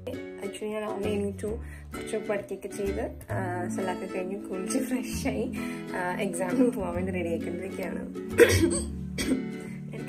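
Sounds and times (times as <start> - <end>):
background music: 0.0 - 10.0
woman coughing: 8.4 - 9.6.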